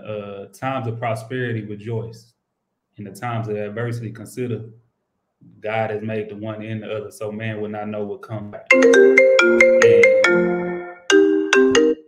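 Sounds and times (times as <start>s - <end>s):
marimba phone ringtone: 8.7s - 12.0s.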